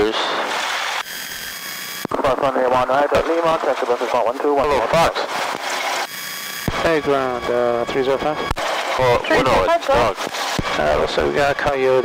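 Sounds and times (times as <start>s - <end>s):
high electrical whines: 0.0s - 12.0s.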